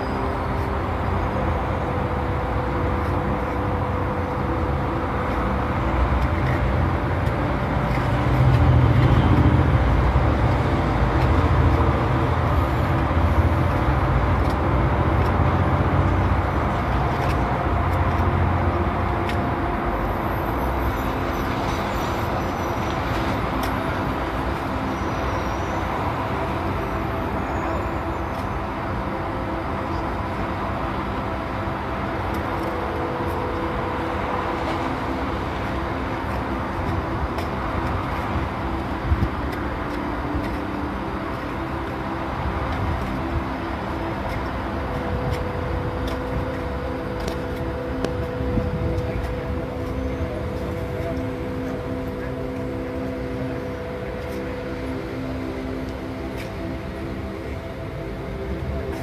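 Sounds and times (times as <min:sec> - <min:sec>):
vehicle engine and traffic rumble: 0:00.0 - 0:59.0.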